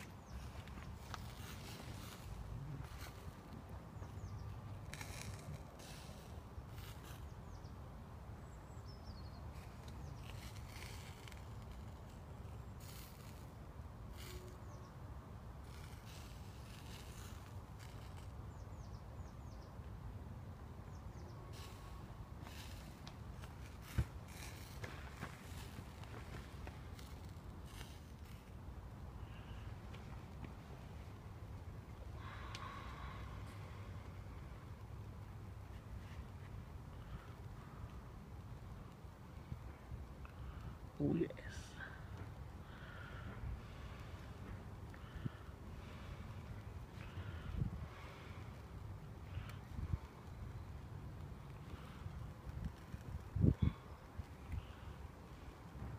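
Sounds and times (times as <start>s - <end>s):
meat sizzling over charcoal: 0.2s - 3.3s, 4.7s - 7.2s, 9.5s - 13.5s, 14.1s - 14.8s, 15.6s - 18.3s, 21.5s - 28.5s
wind rumble on microphone: 43.2s - 55.9s.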